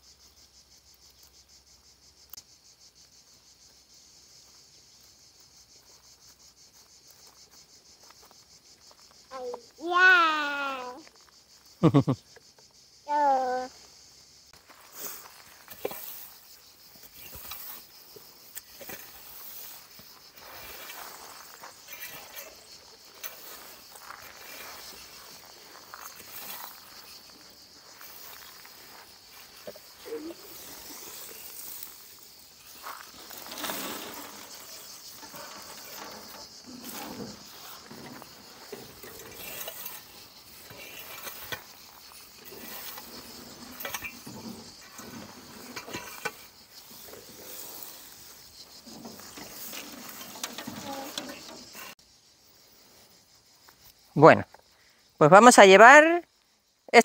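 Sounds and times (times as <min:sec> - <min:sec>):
rake scraping pine needles: 0:14.7 - 0:52.0.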